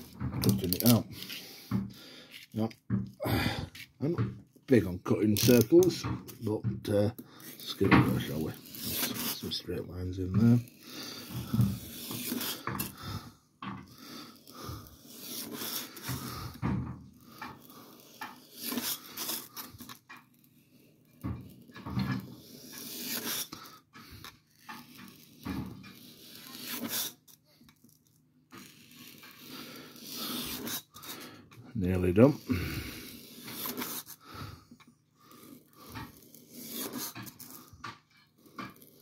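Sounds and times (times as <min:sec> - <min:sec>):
knife cutting foam: 0:00.4 - 0:01.5, 0:07.4 - 0:13.2, 0:13.8 - 0:16.6, 0:17.2 - 0:20.5, 0:22.1 - 0:27.4, 0:28.5 - 0:34.5, 0:35.3 - 0:39.0.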